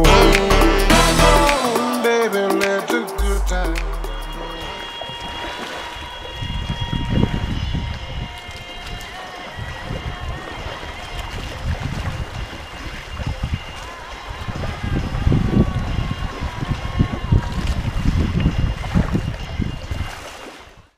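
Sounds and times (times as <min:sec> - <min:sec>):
water splashing along hull: 0:03.8 - 0:20.9
wind buffeting microphone: 0:04.8 - 0:20.9.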